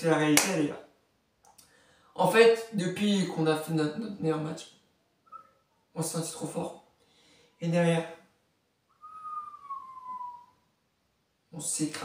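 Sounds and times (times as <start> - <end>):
person whistling falling note: 8.9 - 10.6.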